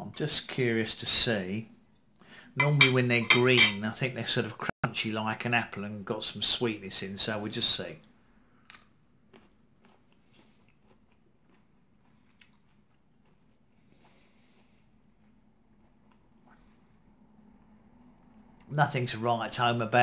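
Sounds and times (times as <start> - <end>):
person chewing fruit: 8.6 - 16.7.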